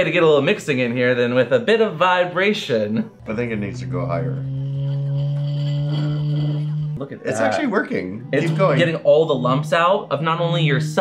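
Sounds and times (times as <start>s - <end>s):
wand massager buzzing: 3.2s - 7.0s.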